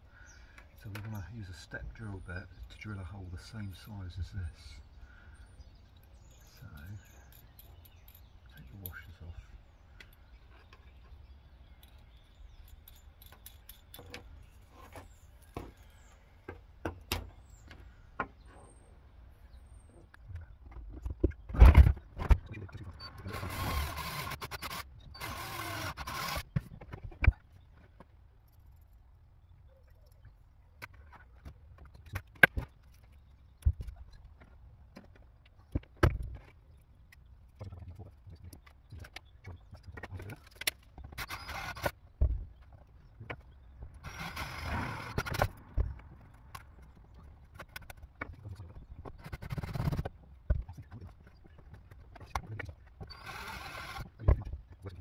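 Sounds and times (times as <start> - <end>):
cordless drill boring through plastic: 23.2 - 26.6, 41.2 - 42.0, 44.0 - 45.5, 53.1 - 54.2.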